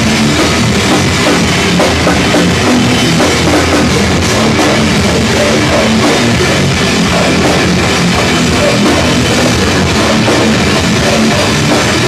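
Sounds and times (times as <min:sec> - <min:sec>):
drum kit with cymbals: 0:00.0 - 0:12.0
electric guitars: 0:00.0 - 0:12.0.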